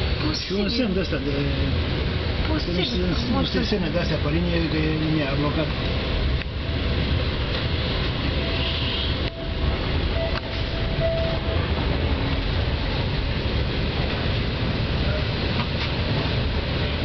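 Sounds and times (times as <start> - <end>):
train wheels rumbling and rattling: 0.0 - 17.0.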